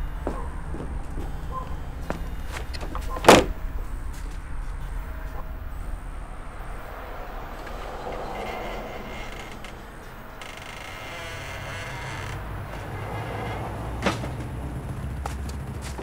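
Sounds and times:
front door shutting: 0:00.0 - 0:05.6, 0:06.4 - 0:15.0
steady low rumble: 0:00.0 - 0:16.0.

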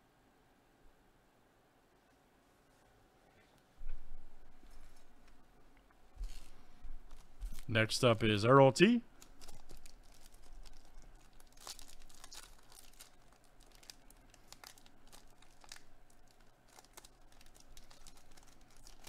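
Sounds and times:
foil wrapper crinkling and tearing: 0:09.1 - 0:19.0.

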